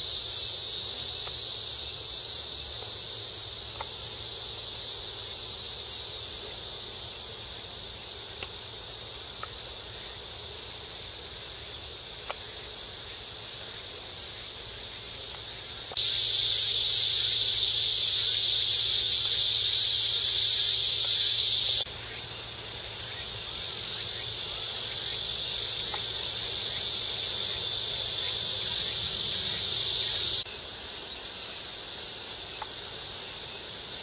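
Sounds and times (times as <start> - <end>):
cicadas buzzing: 0.0 - 34.0.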